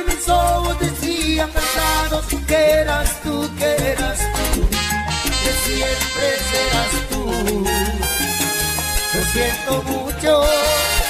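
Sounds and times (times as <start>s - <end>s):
salsa music: 0.0s - 11.0s
steady bass line: 0.0s - 11.0s.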